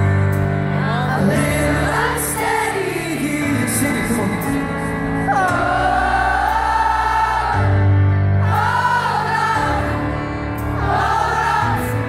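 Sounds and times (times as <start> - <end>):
bass: 0.0 - 12.0
keyboard: 0.0 - 12.0
live band music: 0.0 - 12.0.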